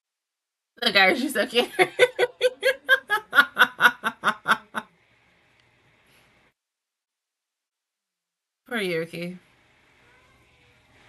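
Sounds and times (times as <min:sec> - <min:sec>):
woman laughing: 0:01.4 - 0:04.8.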